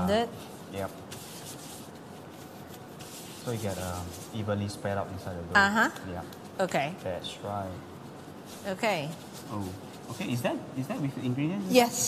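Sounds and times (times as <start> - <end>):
gloved hands rolling dough: 0.5 - 5.2.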